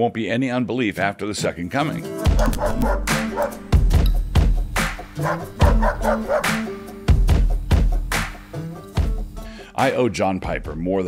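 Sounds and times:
intro music: 2.1 - 8.7.

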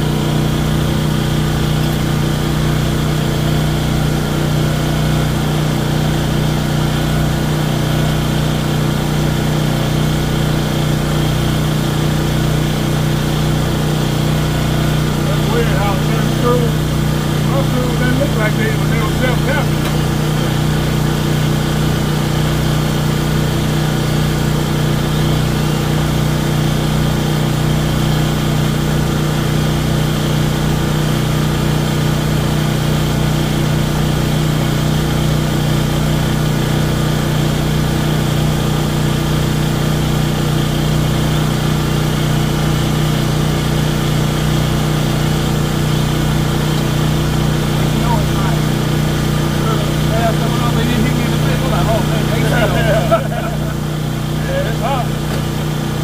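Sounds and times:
generator engine running: 0.0 - 56.0.

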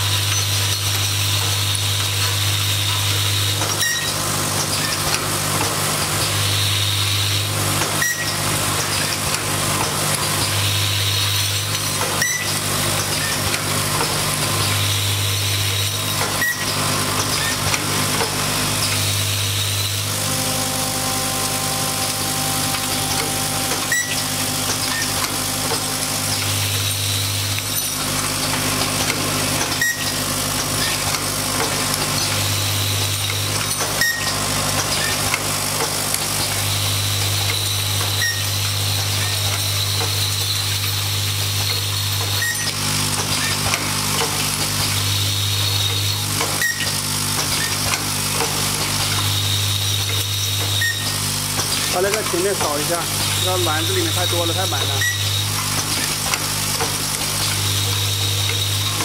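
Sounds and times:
machine mechanical hum: 0.0 - 59.0.

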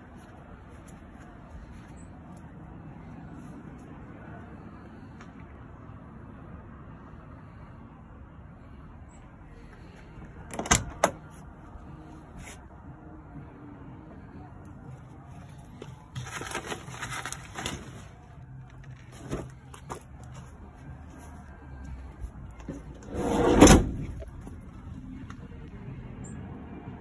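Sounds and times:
van door clunk: 10.4 - 11.2, 22.6 - 24.3
van door rumbling shut: 10.5 - 11.2, 22.7 - 24.2
low handling noise: 22.2 - 25.6.

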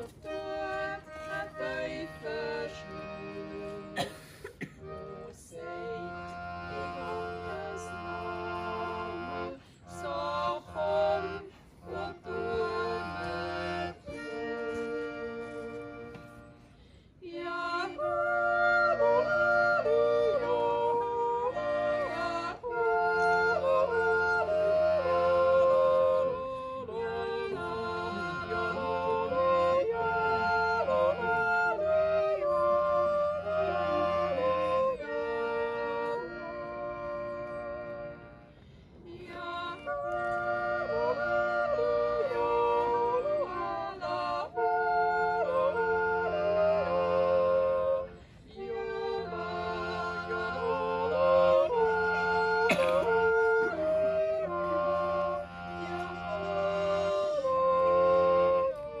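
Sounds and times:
button accordion chords: 0.0 - 59.0
women yodelling in harmony: 17.2 - 38.1, 39.2 - 59.0.

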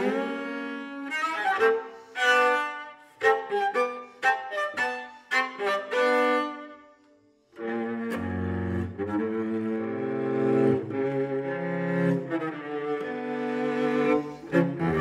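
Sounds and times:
solo cello playing: 0.0 - 15.0.

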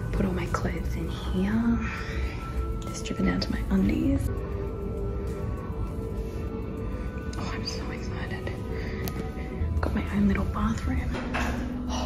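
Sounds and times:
faint background music: 0.0 - 12.0.

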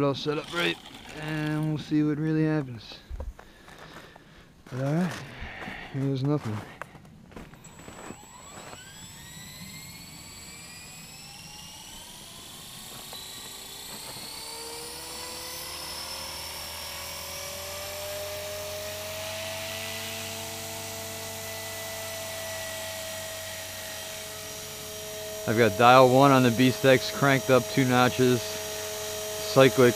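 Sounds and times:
electric motor and rotor whine: 0.0 - 29.9.

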